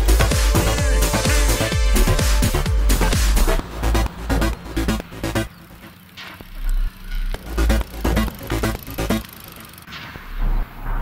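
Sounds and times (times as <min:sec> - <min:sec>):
electronic music with pulsing bass beat: 0:00.0 - 0:11.0.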